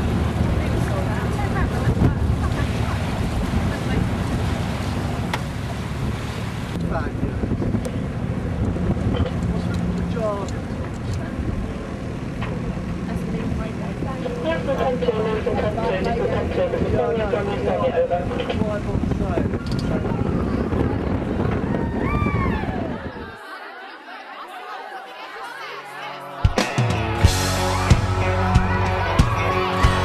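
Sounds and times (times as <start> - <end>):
steady low rumble: 0.0 - 23.2
wind buffeting microphone: 0.0 - 23.4
faint voices: 6.8 - 30.0.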